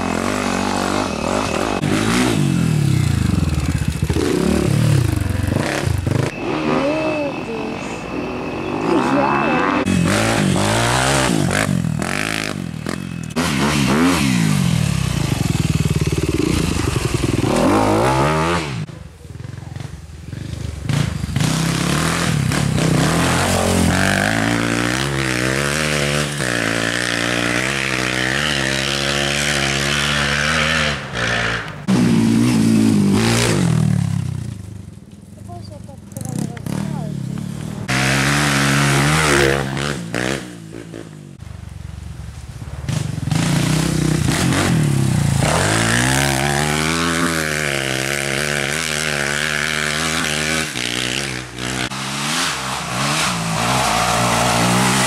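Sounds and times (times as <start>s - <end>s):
dirt bikes revving past: 0.0s - 55.0s.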